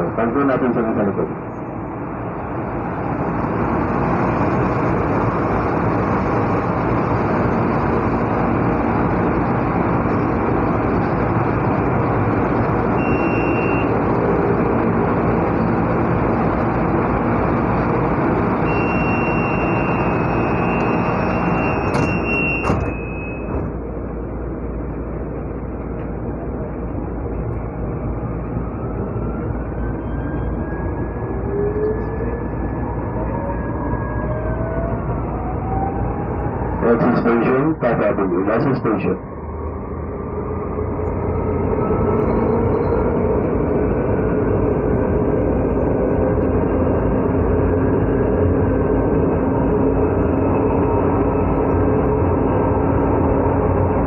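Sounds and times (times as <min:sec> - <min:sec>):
train rumble: 0:00.0 - 0:54.0.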